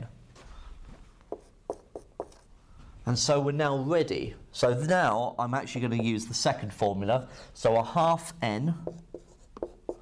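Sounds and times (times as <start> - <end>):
marker writing on a whiteboard: 1.2 - 2.5, 8.7 - 10.0.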